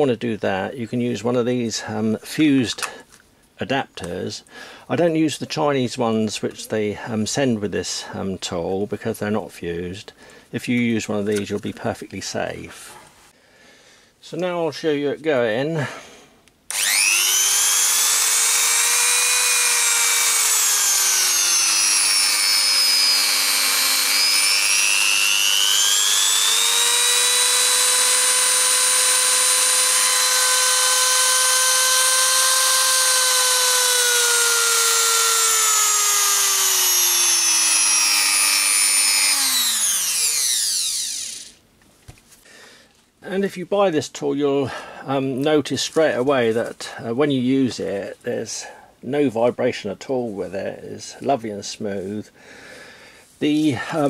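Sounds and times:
rotary tool motor whining: 0:16.7 - 0:41.6.

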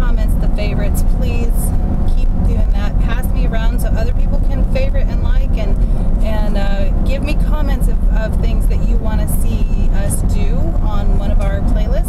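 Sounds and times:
car cabin rumble: 0:00.0 - 0:12.0
woman talking: 0:00.0 - 0:12.0.

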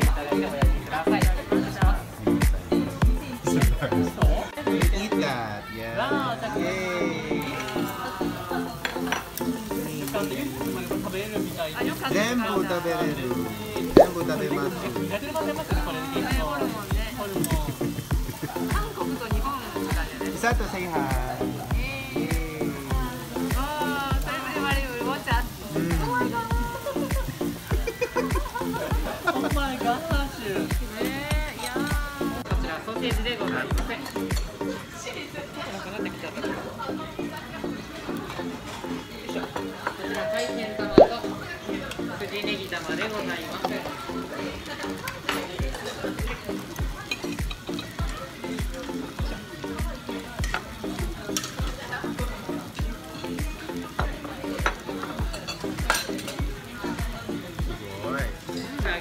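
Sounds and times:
background music with steady beat: 0:00.0 - 0:34.8, 0:36.0 - 0:43.2, 0:44.6 - 0:59.0
chicken sizzling on a griddle: 0:00.0 - 0:40.4, 0:41.2 - 0:59.0.

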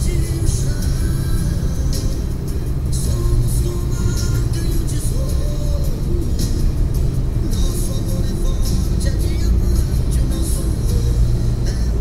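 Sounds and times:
engine and tyre rumble: 0:00.0 - 0:12.0
music in car: 0:00.0 - 0:12.0.

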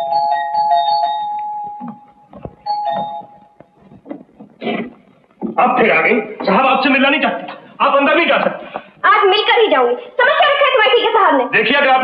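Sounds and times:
doorbell two-tone chime: 0:00.0 - 0:02.0, 0:02.6 - 0:03.5.

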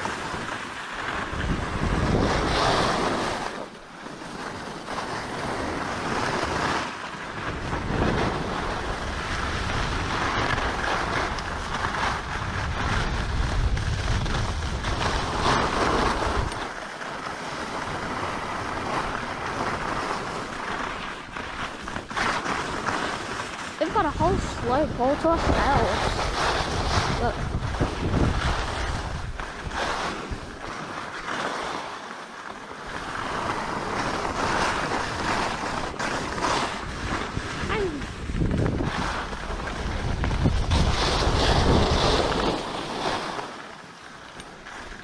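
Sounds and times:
wind on microphone: 0:00.0 - 0:31.9, 0:32.8 - 0:43.6
skis scraping over snow: 0:00.0 - 0:45.0.

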